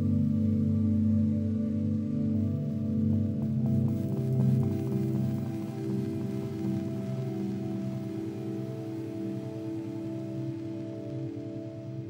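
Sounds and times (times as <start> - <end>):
meditation drone music: 0.0 - 12.0.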